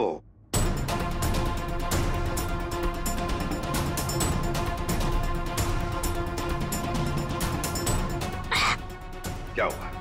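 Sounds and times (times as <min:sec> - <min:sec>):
background music: 0:00.2 - 0:10.0
man crying out in disgust: 0:08.5 - 0:08.8.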